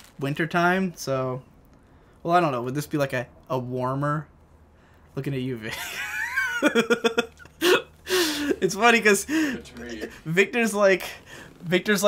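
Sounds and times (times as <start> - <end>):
man laughing: 5.7 - 10.2.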